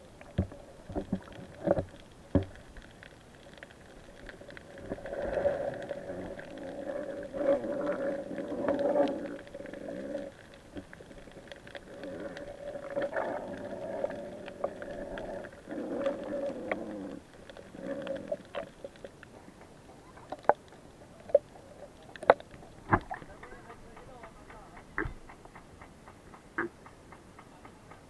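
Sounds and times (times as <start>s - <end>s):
muffled underwater sound: 0.0s - 25.4s.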